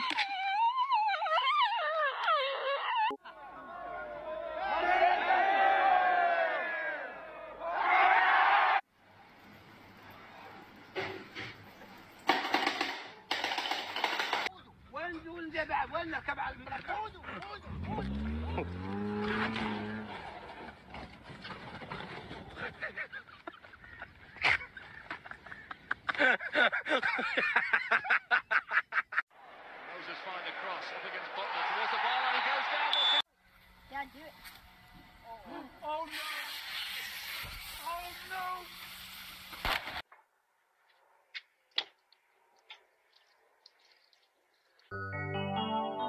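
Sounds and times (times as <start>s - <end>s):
people laughing: 2.8s - 4.2s, 22.4s - 33.0s
car engine revving: 17.6s - 20.6s.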